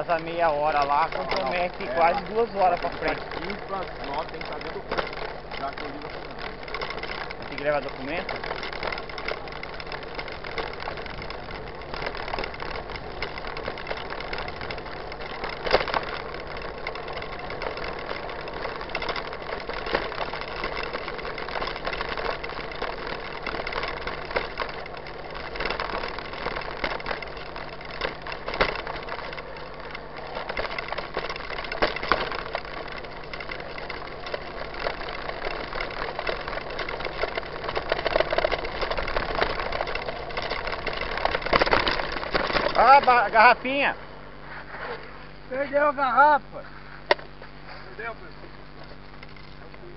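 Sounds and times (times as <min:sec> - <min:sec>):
bike knocking over bumps: 0:00.0 - 0:43.9, 0:47.0 - 0:49.9
bike tyres rumbling on dirt: 0:00.0 - 0:49.9.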